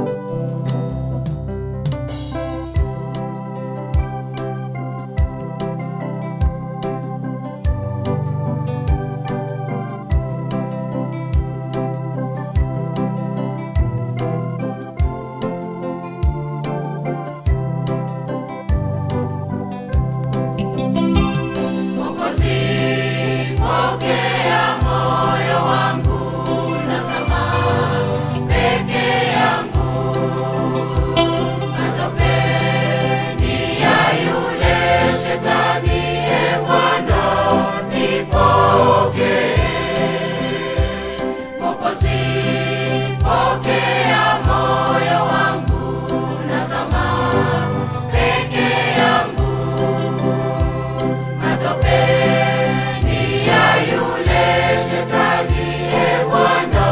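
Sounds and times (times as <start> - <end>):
studio backing track: 0.0 - 56.9
choir singing gospel: 20.8 - 56.9.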